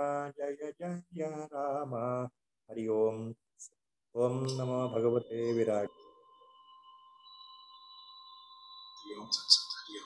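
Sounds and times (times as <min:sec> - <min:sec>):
thin steady high tone: 0:04.2 - 0:10.0.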